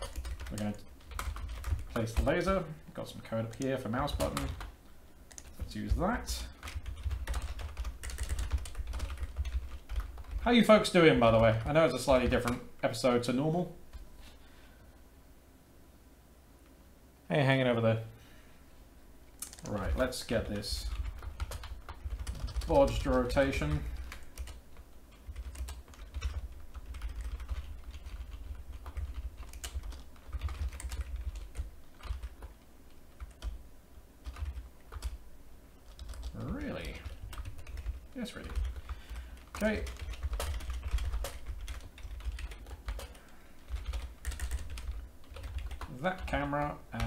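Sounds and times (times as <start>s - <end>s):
typing on keyboard: 0.0s - 2.5s, 3.5s - 4.7s, 5.3s - 5.7s, 6.6s - 10.5s, 19.4s - 33.6s, 34.2s - 35.2s, 35.9s - 46.3s.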